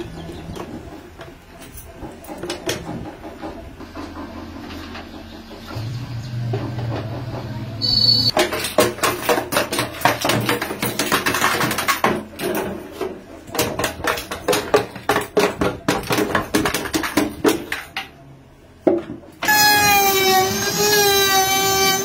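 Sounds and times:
brief high squeak: 0:07.8 - 0:08.3.

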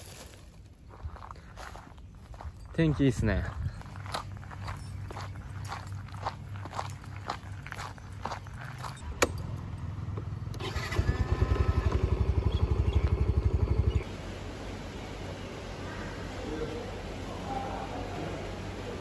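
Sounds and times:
footsteps on dirt road: 0:00.0 - 0:10.4, 0:12.7 - 0:13.7
scooter engine running: 0:05.0 - 0:19.0.

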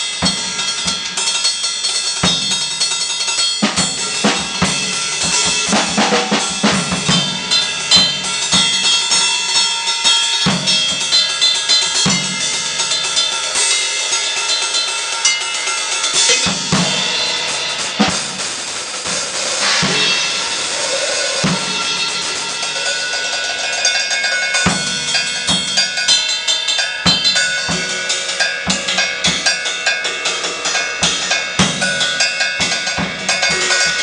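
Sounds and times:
clanky metallic cymbal strikes: 0:00.0 - 0:34.0
heavy drum hits: 0:03.6 - 0:09.0, 0:16.1 - 0:26.0, 0:27.1 - 0:29.7, 0:31.0 - 0:34.0.

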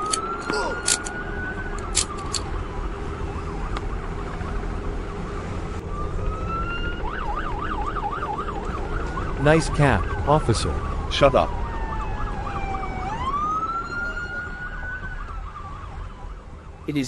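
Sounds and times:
police siren wailing: 0:00.0 - 0:17.0.

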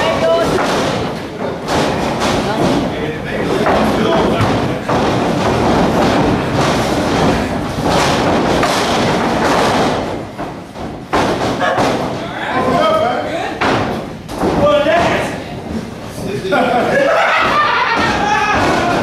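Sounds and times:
bodies thudding on ring canvas: 0:00.2 - 0:12.3
people shouting: 0:17.0 - 0:19.0.

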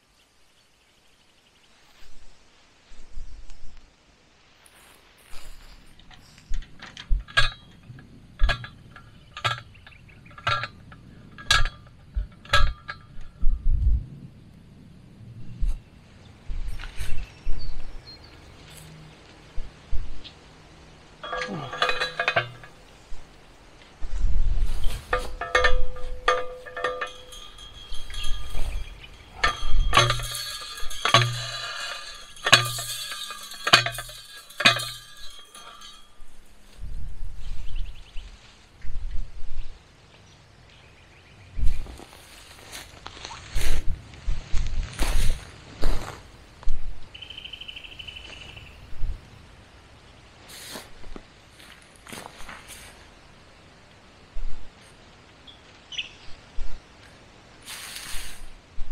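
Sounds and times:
rustle in dry grass: 0:00.0 - 0:13.0, 0:15.4 - 0:49.2, 0:49.8 - 0:58.9
metal post driver clinking: 0:06.1 - 0:13.4, 0:21.2 - 0:23.0, 0:25.0 - 0:36.8.

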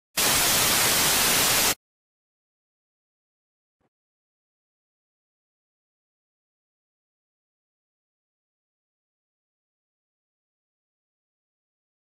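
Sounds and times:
television static hiss: 0:00.2 - 0:01.8.

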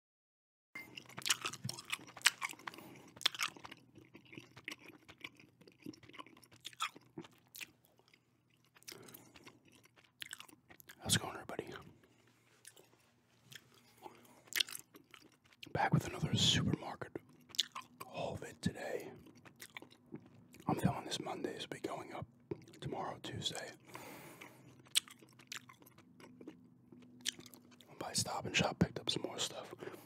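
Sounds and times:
gum chewing mouth clicks: 0:01.0 - 0:11.7, 0:12.6 - 0:18.2, 0:18.9 - 0:20.9, 0:24.3 - 0:28.0.

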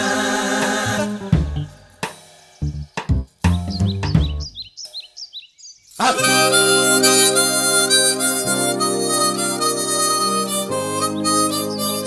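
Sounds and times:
birds chirping: 0:02.5 - 0:12.0.

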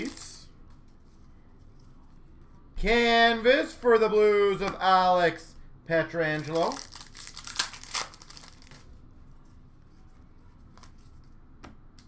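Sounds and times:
man speaking: 0:00.0 - 0:00.5, 0:02.8 - 0:06.8
cards rustling in hands: 0:06.2 - 0:11.4.

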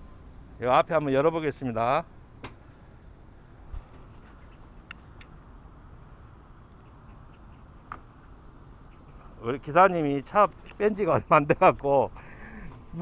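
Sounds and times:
low background hum: 0:00.0 - 0:13.0
light clicks: 0:10.5 - 0:10.8.

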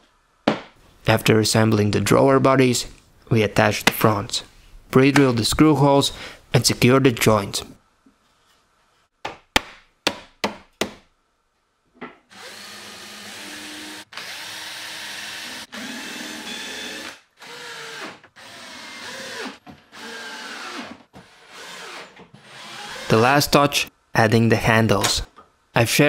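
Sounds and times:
cordless drill running in bursts: 0:12.3 - 0:20.8.

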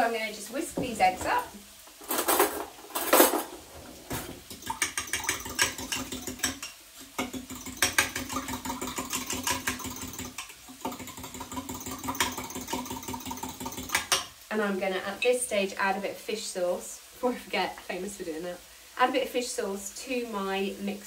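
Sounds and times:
whisk clicking against glass jug: 0:04.5 - 0:14.3.

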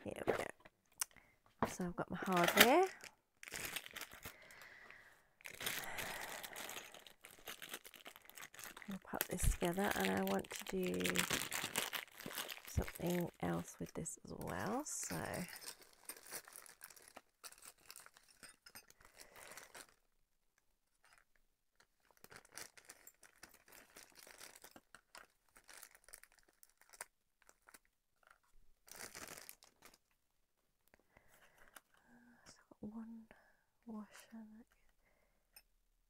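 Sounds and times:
plastic bag crinkling: 0:01.8 - 0:20.1, 0:20.9 - 0:30.2.

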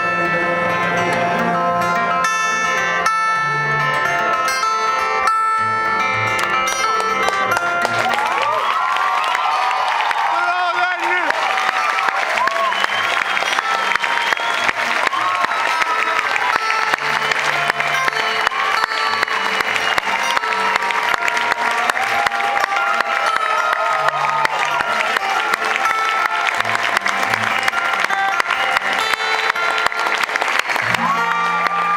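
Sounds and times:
audience applause: 0:06.4 - 0:31.9
shouts and whoops: 0:07.9 - 0:17.0, 0:18.1 - 0:26.1, 0:30.8 - 0:31.9.

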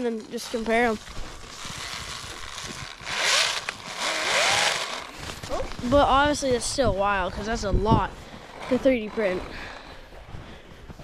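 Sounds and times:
track churning snow: 0:00.0 - 0:11.0
electric motor whining: 0:01.5 - 0:05.1.

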